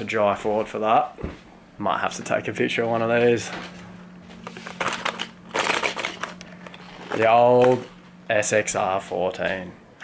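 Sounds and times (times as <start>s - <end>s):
low steady hum: 0.0s - 10.0s
packaging crinkling and clicking: 4.4s - 7.9s.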